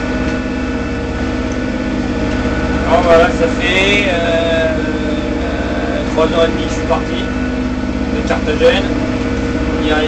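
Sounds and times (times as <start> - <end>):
diesel engine droning: 0.0 - 10.0.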